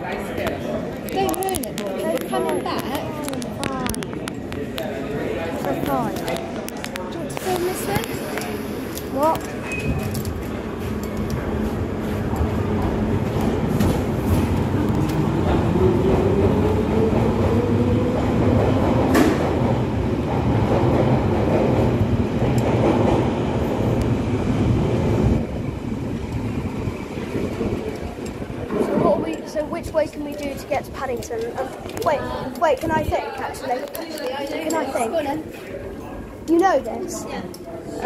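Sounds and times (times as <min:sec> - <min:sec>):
wheels on rail: 0:05.8 - 0:32.1.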